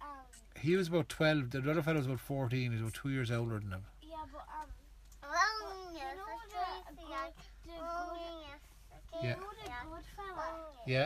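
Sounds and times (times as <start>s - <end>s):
girl sing-song talking: 4.0s - 10.9s.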